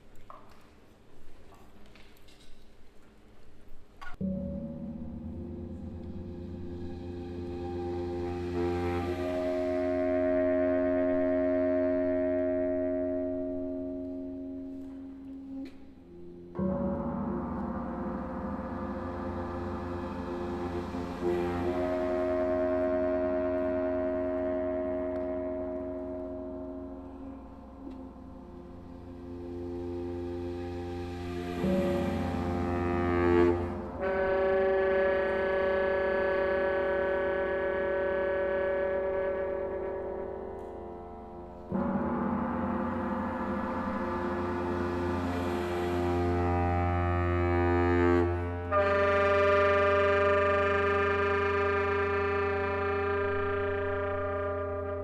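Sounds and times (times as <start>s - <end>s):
sustained orchestral notes: 4.1s - 55.0s.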